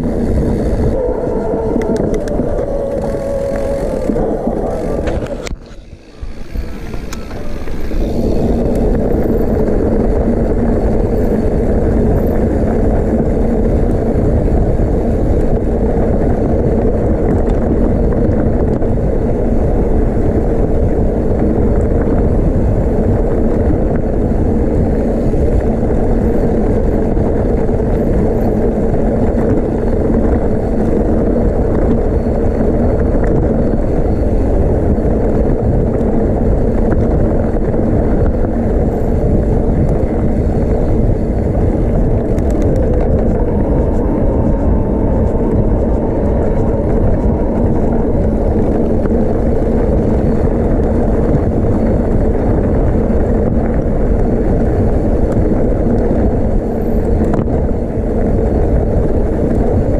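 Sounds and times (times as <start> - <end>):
bike tyres rumbling on dirt: 0.0 - 59.9
wind noise on microphone: 0.0 - 59.9.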